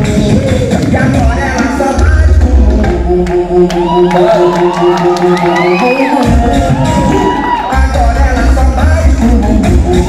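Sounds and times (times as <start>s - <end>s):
pulsing dance music: 0.0s - 10.0s
crowd cheering and whooping: 3.6s - 8.8s, 9.6s - 10.0s.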